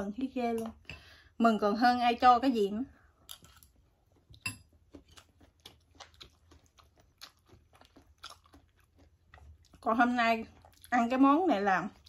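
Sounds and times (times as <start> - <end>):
chewing and crunching food: 2.9 - 12.0.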